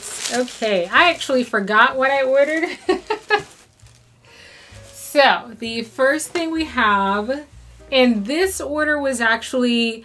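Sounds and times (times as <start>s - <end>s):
faint background music: 0.0s - 10.0s
woman laughing: 2.6s - 3.6s.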